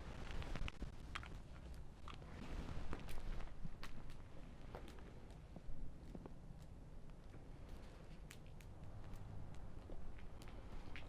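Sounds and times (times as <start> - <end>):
wood fire crackling and popping: 2.8 - 11.0.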